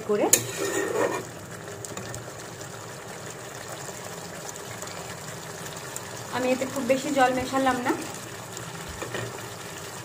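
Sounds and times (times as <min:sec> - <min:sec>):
gravy simmering and bubbling: 0:00.0 - 0:10.0.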